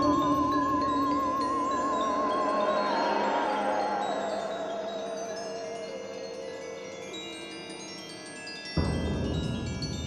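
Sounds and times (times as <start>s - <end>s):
wavering tone: 0.0s - 6.7s
shimmering chimes: 0.0s - 10.0s.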